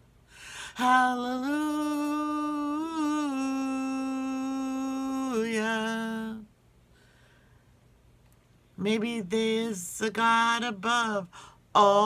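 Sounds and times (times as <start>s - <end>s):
woman singing: 0.6s - 6.5s, 8.8s - 12.0s.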